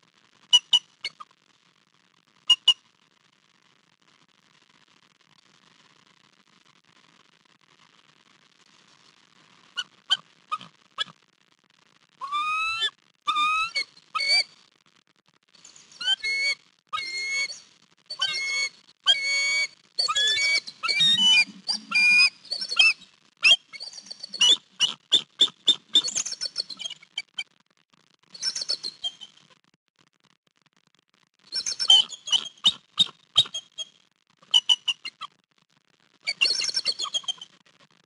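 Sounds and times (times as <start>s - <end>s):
eagle chirping: 12.2s - 14.4s, 16.0s - 27.4s, 31.5s - 33.9s, 34.5s - 35.3s, 36.3s - 37.4s.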